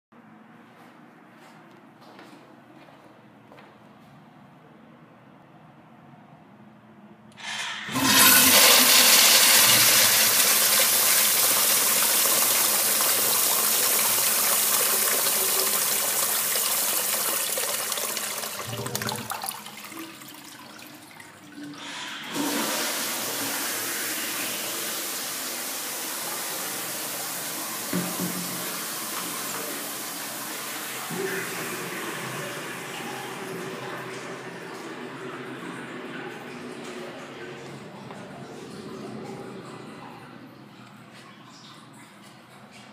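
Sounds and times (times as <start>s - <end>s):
urinal flushing: 7.3s - 42.9s
water rushing in plumbing: 7.3s - 42.9s.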